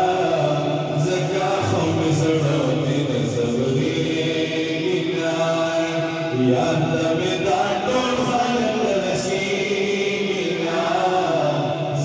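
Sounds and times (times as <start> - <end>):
man chanting through loudspeakers: 0.0 - 12.0.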